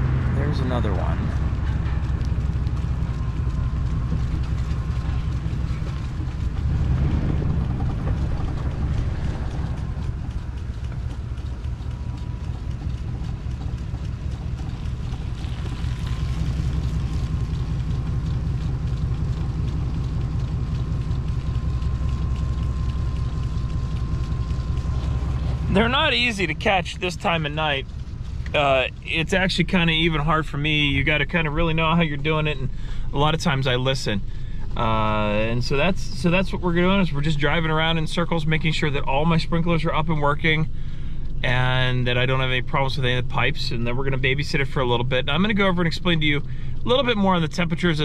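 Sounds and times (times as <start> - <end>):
vehicle engine rumbling: 0.0 - 48.0.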